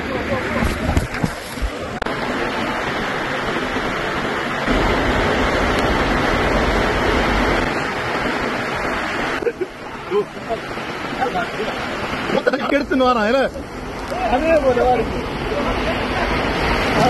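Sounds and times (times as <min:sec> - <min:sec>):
water rushing down slide: 0:00.0 - 0:17.0.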